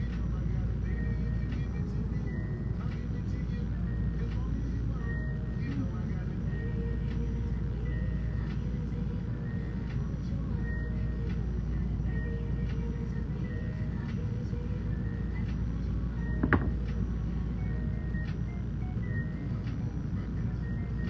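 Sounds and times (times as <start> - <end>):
air conditioner rumbling: 0.0 - 21.0
faint music: 0.0 - 21.0.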